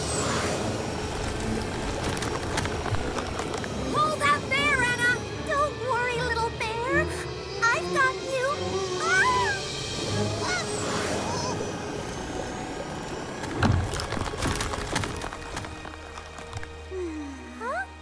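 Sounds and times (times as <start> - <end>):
cartoon background music: 3.0 - 18.0.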